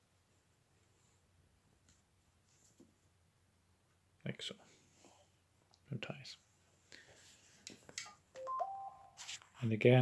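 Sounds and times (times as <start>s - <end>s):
two-tone electronic beep: 8.4s - 9.2s.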